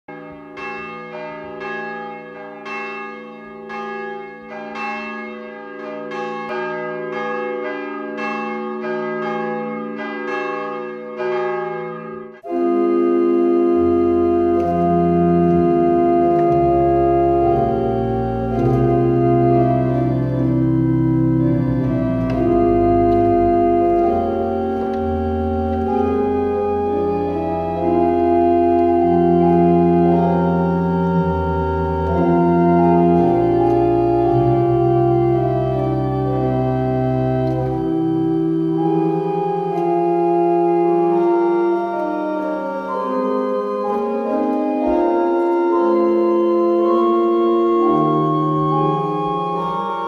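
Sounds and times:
church bells ringing: 0.1s - 50.0s
pipe organ chords: 0.1s - 50.0s
deep organ pedal notes: 5.8s - 50.0s.

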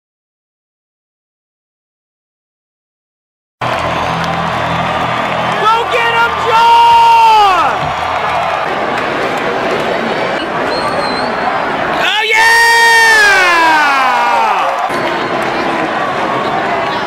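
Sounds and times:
fans yelling: 3.6s - 17.0s
stadium crowd noise: 3.6s - 17.0s.

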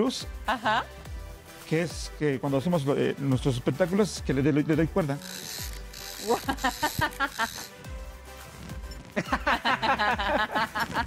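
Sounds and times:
background music: 0.0s - 11.0s
people laughing: 6.2s - 7.7s, 9.2s - 11.0s.

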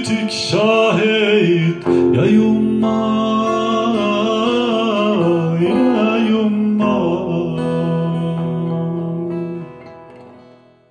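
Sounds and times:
man singing a long note: 0.0s - 9.8s
acoustic guitar chords: 0.0s - 10.9s.

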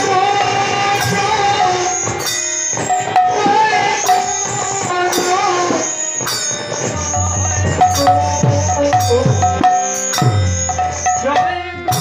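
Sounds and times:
devotional music with long held notes: 0.0s - 12.0s
shimmering hand percussion: 0.0s - 12.0s.

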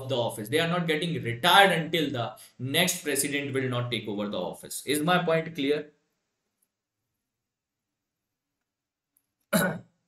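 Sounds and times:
man coughing: 9.5s - 10.0s.

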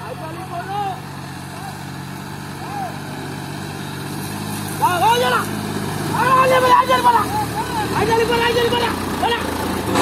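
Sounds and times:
tractor diesel engine running: 0.0s - 10.0s
man shouting: 2.6s - 3.0s, 4.8s - 5.5s, 6.1s - 9.5s.

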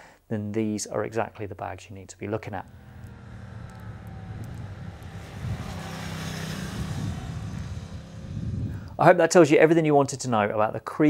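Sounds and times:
motorcycle engine passing by: 2.4s - 9.0s.

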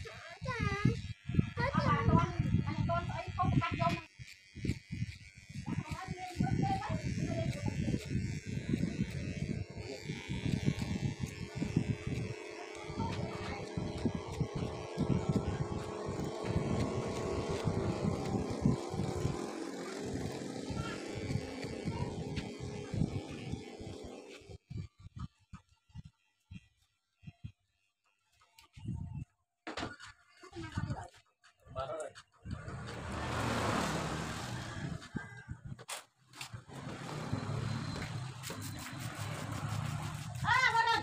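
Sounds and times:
electric hair clippers buzzing: 0.0s - 24.7s, 32.5s - 35.0s, 36.4s - 41.0s
voices: 5.7s - 24.6s, 36.8s - 41.0s.

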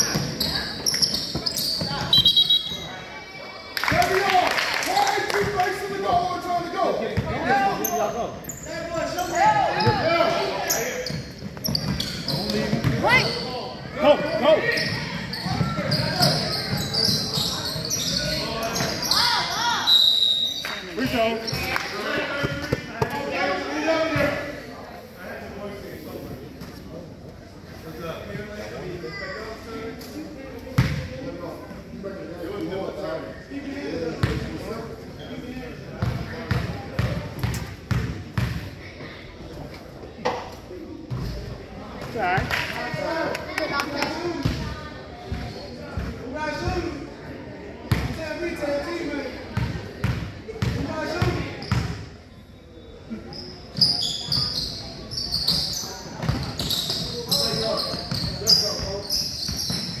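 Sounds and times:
shoe squeaks: 0.0s - 3.1s, 7.8s - 13.7s, 14.3s - 21.7s, 35.2s - 35.6s, 51.6s - 60.0s
indistinct chatter: 0.0s - 60.0s.

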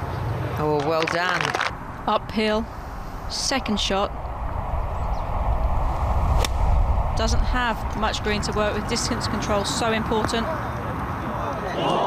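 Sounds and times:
steady low rumble: 0.4s - 11.3s
golf club striking ball: 6.4s - 6.6s.

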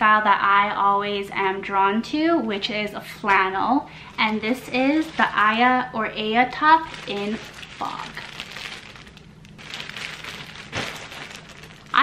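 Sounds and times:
plastic bag crinkling: 3.2s - 12.0s.

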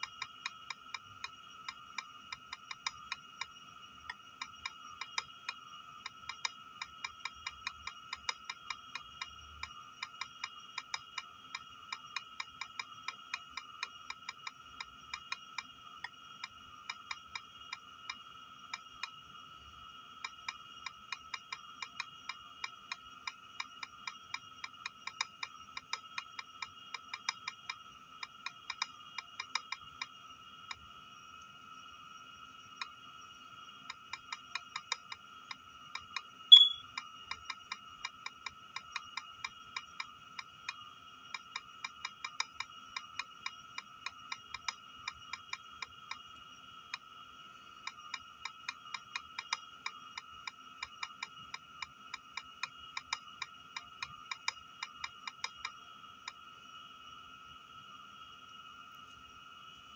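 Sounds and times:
faint high whine: 36.4s - 37.0s, 55.6s - 59.9s
loud short high beep: 36.5s - 36.8s
on-screen keyboard key clicks: 36.5s - 36.8s.

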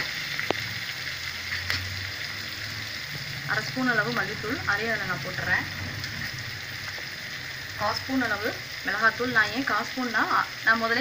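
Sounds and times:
food sizzling in hot oil: 0.0s - 11.0s.

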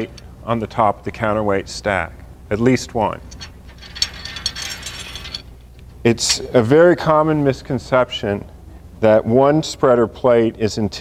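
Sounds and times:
metal plate rattling and scraping: 3.4s - 5.5s.

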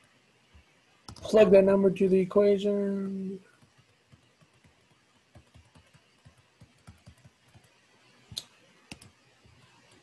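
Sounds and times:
stylus tapping on tablet screen: 3.6s - 7.7s.

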